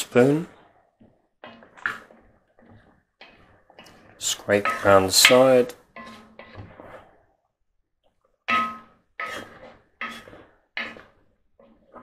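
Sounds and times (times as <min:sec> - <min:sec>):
wooden spoon stirring in pot: 0:00.0 - 0:12.0.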